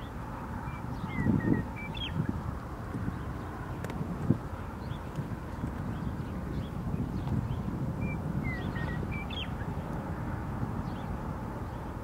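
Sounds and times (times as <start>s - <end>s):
bird chirping and whistling: 0.7s - 2.3s, 8.0s - 9.7s.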